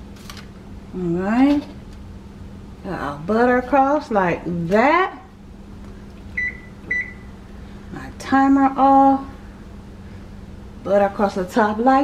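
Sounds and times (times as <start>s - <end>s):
kitchen timer beeping: 6.4s - 7.2s.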